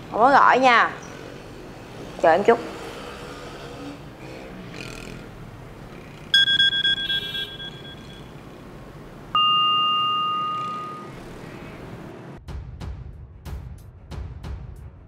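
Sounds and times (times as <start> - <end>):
bell-like phone ding: 6.4 - 8.3, 9.4 - 11.2.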